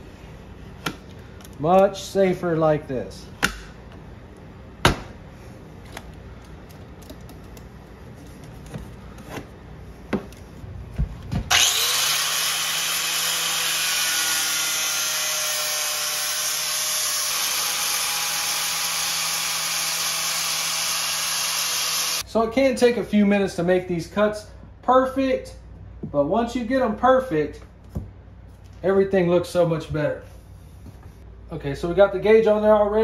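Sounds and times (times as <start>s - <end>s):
angle grinder sanding: 11.5s - 22.2s.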